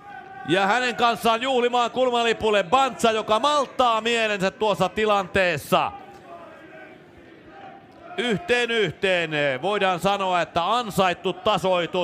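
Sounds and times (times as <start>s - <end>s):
faint stadium crowd noise: 0.0s - 12.0s.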